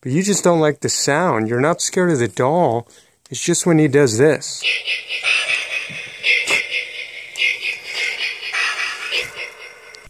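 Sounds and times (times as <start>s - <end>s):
tinny horror clip from toy speaker: 4.6s - 10.0s.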